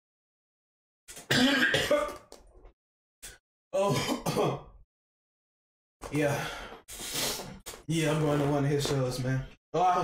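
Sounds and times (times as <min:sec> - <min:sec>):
man coughing: 0:01.2 - 0:02.2, 0:03.8 - 0:04.7.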